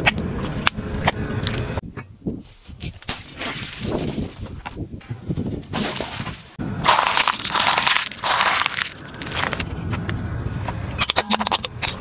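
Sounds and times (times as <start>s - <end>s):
tyre crushing batteries: 5.6s - 9.7s.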